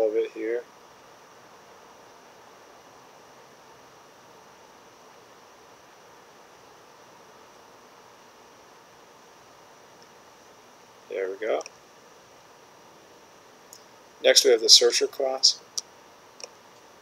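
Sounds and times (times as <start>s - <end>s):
faint steady hiss: 0.0s - 17.0s.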